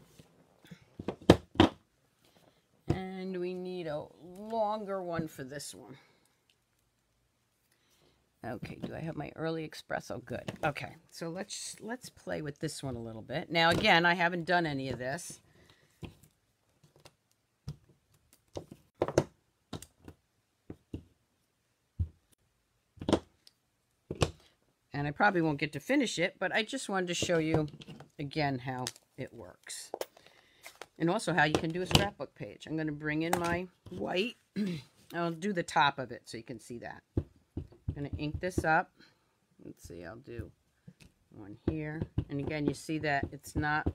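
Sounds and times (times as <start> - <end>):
acrylic blocks knocking: 41.6 - 43.9.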